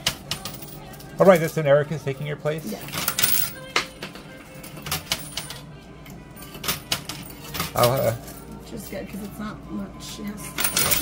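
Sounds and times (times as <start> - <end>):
coins clinking: 0.0 - 2.1, 2.7 - 5.7, 6.3 - 9.4, 10.4 - 11.0.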